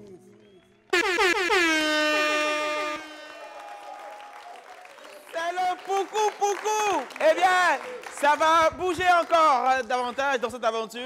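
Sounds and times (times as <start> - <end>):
air horn sound effect: 0.9 - 4.2.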